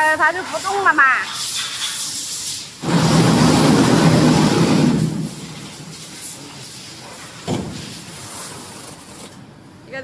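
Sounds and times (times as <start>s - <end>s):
hiss: 0.4s - 9.3s.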